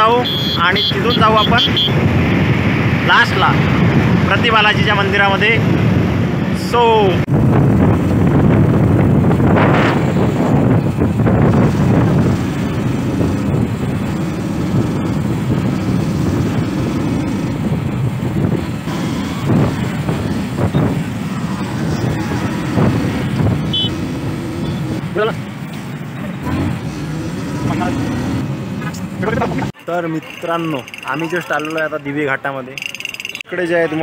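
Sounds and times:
passing road traffic: 0:00.0 - 0:34.0
wind buffeting microphone: 0:01.9 - 0:25.1
motorcycle engine: 0:07.3 - 0:31.9.

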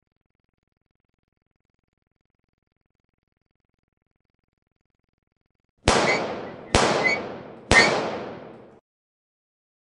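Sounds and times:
sharp impact bangs: 0:05.9 - 0:08.8.

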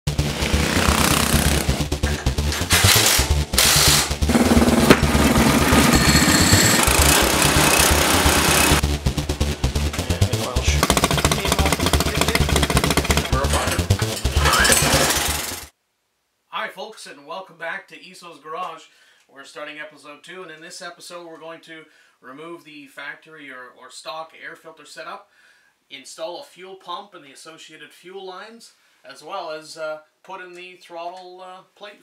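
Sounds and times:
kart engine running fast: 0:00.1 - 0:08.8, 0:10.5 - 0:15.7.

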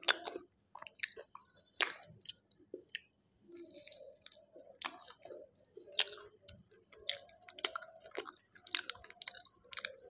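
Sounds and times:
close chewing with mouth smacks: 0:00.0 - 0:10.0.

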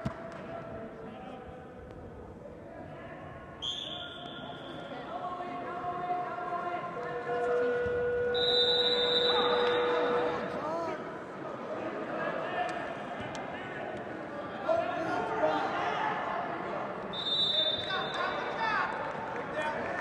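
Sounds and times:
people calling out in a gymnasium: 0:02.5 - 0:20.0.

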